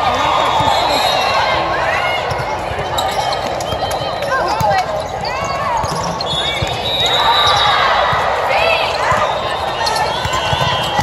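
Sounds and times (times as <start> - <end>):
people calling out and talking: 0.0 - 11.0
sneakers squeaking on floor: 0.0 - 11.0.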